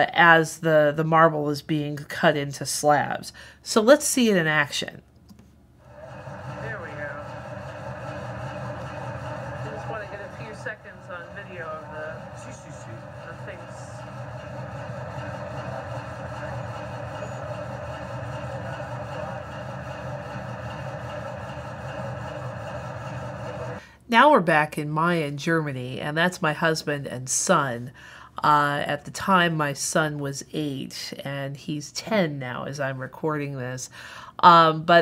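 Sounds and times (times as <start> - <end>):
faint voices: 5.9 - 21.2
stone saw cutting marble: 5.9 - 23.8.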